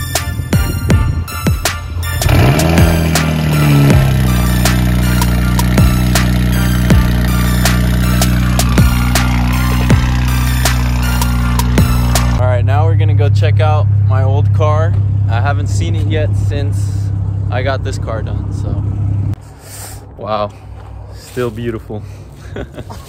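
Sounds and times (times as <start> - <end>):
background music with steady beat: 0.0 - 12.4
car engine starting and idling: 2.0 - 19.4.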